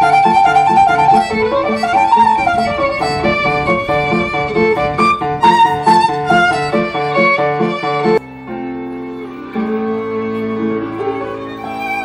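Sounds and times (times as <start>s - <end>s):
piano chords: 0.0s - 12.0s
solo violin melody: 0.0s - 12.0s.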